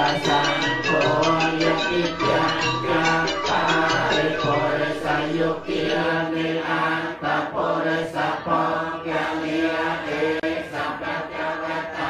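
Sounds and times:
group chanting: 0:00.0 - 0:12.0.

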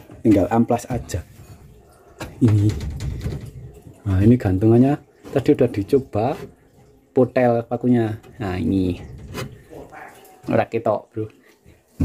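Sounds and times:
rustling and rubbing on wood: 0:08.0 - 0:10.7.

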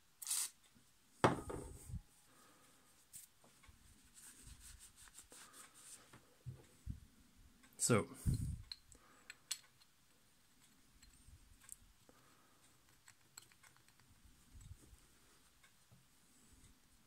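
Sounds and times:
small metal parts clicking: 0:12.9 - 0:14.0.

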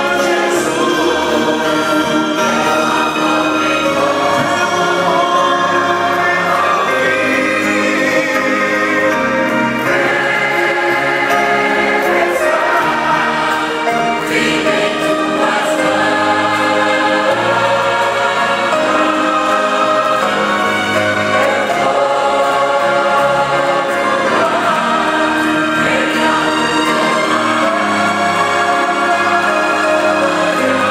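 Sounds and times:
choir singing a hymn: 0:00.0 - 0:30.9.

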